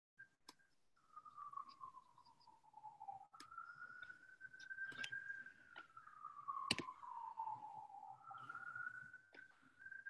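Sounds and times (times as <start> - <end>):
sharp click: 6.7 - 6.9.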